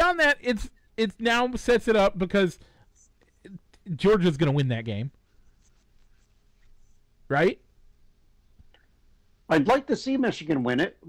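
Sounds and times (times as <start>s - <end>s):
man speaking: 0.0s - 2.6s, 3.4s - 5.2s, 7.3s - 7.6s, 9.5s - 11.0s
faint soft sounds: 2.2s - 9.5s.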